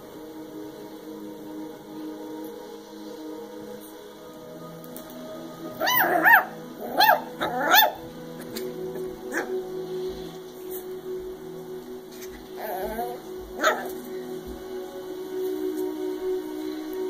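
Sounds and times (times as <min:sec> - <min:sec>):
puppy yipping: 0:05.8 - 0:08.6, 0:12.7 - 0:14.0.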